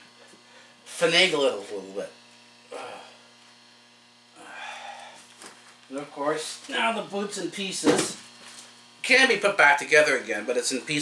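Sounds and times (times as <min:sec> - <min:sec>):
electrical mains hum: 0:00.0 - 0:11.0
person grunting with effort: 0:02.7 - 0:03.2, 0:04.4 - 0:05.2.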